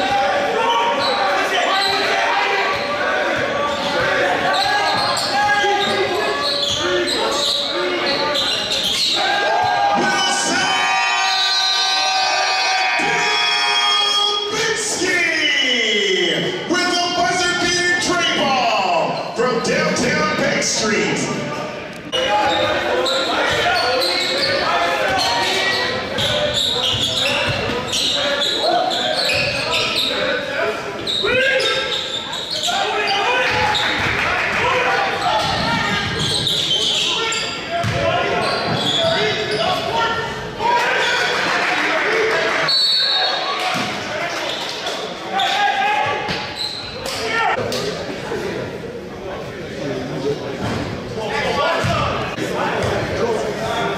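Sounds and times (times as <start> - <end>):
echoing indistinct voices: 0.0 - 53.9.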